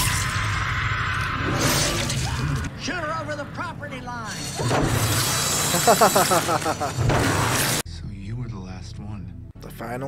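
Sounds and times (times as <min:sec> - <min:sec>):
harsh shredding and grinding: 0:00.0 - 0:07.8.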